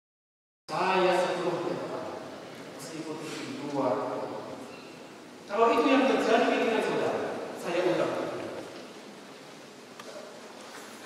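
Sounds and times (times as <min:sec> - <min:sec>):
man's voice over loudspeakers: 0:00.7 - 0:04.6, 0:05.5 - 0:08.7
steady room hiss: 0:00.7 - 0:11.0.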